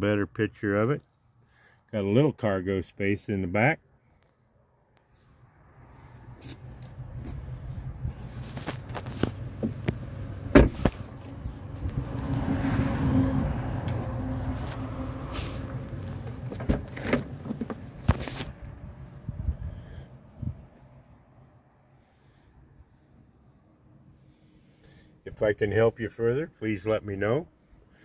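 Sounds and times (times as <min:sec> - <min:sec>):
car door shutting: 0:09.6 - 0:11.0, 0:16.2 - 0:18.0.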